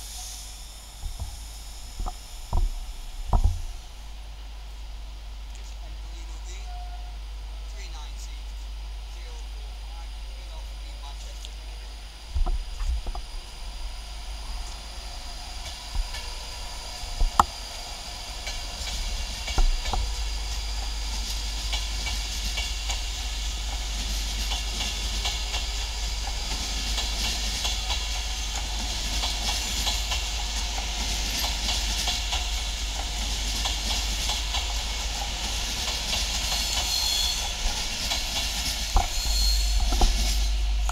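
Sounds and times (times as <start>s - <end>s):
train wheels rolling on rail: 0.0s - 40.9s.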